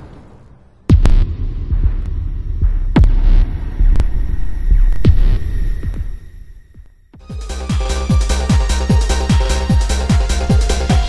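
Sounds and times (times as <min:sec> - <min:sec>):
deep downward-sweeping hits: 0:00.8 - 0:11.0
low throbbing rumble: 0:00.8 - 0:11.0.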